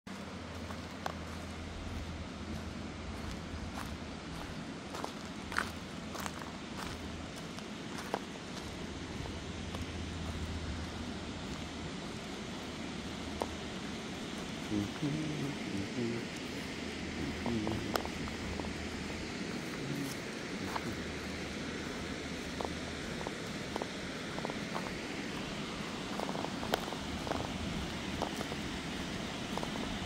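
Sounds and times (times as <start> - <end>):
footsteps on gravel and grass: 0.1 - 30.0
steady rushing noise: 0.1 - 30.0.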